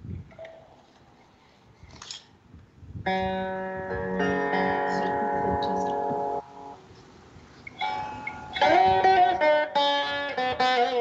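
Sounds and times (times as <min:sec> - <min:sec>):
veena being plucked: 0:03.1 - 0:06.8, 0:07.7 - 0:11.0.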